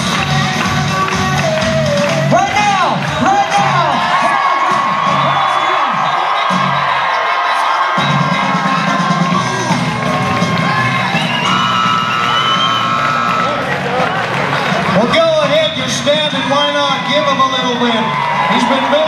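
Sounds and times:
loud music with steady beat: 0:00.0 - 0:18.6
crowd cheering and whooping: 0:01.1 - 0:19.0.

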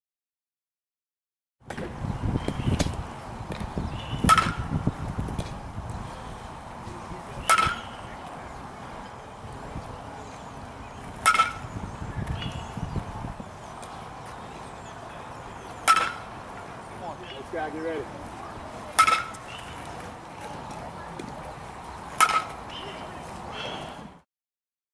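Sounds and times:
baseball bat hitting ball: 0:02.8 - 0:05.6, 0:07.4 - 0:07.9, 0:11.2 - 0:11.7, 0:15.8 - 0:16.3, 0:18.9 - 0:19.4, 0:22.2 - 0:22.6.

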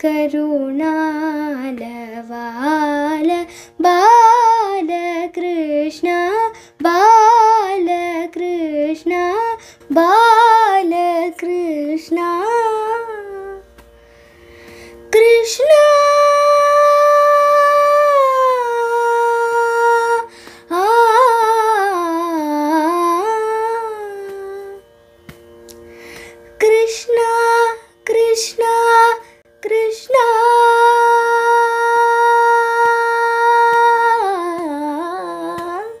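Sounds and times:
woman singing sustained notes: 0:00.0 - 0:25.0, 0:25.7 - 0:36.0
faint steady drone: 0:00.0 - 0:36.0.

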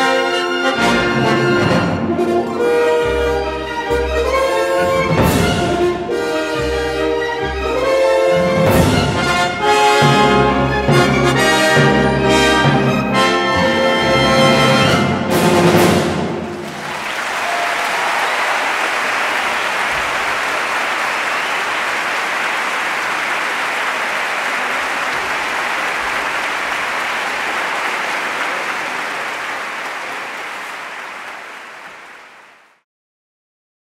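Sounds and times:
audience applauding: 0:16.4 - 0:32.8.

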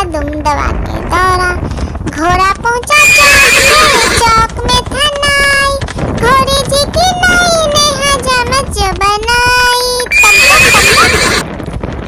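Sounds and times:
children's song singing: 0:02.2 - 0:11.1
horse whinny: 0:03.0 - 0:04.2, 0:10.1 - 0:11.4.

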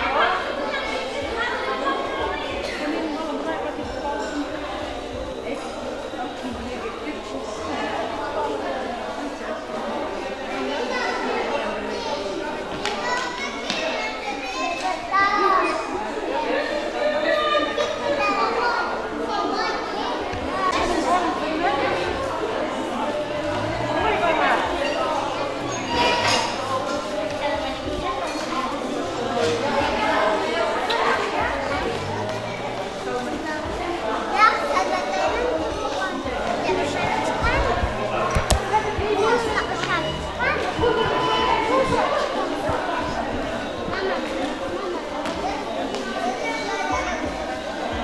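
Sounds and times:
children playing: 0:00.0 - 0:48.0
people chatting: 0:00.0 - 0:48.0
child's voice rising: 0:36.8 - 0:41.8.

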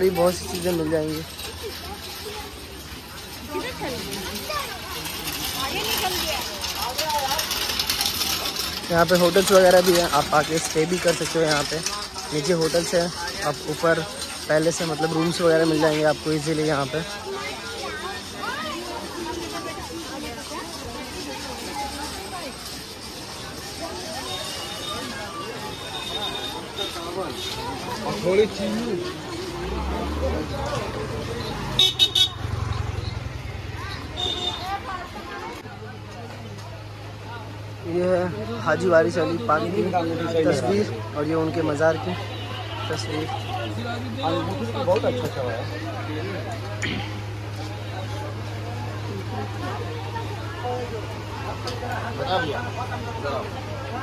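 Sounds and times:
light clinks and rattles: 0:00.0 - 0:37.8
engine humming: 0:00.0 - 0:54.0
vehicle horn toots: 0:31.8 - 0:32.4, 0:34.1 - 0:34.7.

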